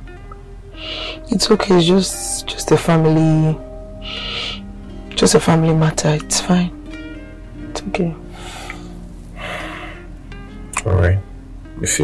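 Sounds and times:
soft background music: 0.0s - 12.0s
person breathing breathily: 4.0s - 4.7s, 8.3s - 10.1s.

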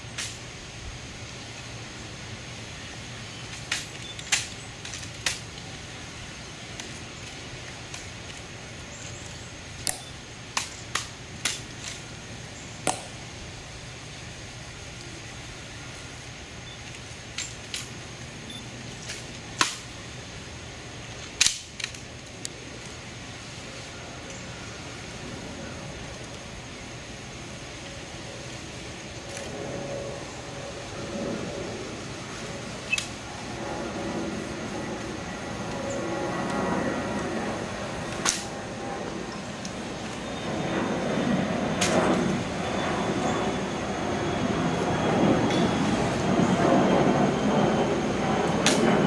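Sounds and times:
outdoor background rumble: 0.0s - 49.0s.

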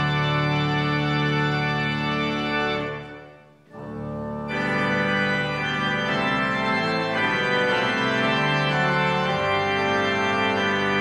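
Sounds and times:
organ playing held chords: 0.0s - 11.0s.

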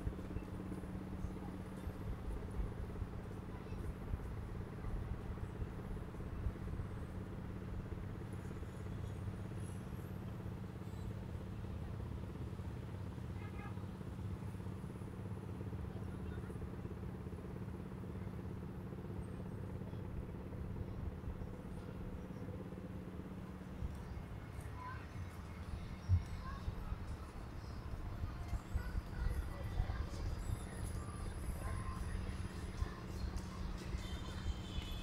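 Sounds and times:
faint distant voices: 0.0s - 35.0s
low mechanical hum: 0.0s - 35.0s.

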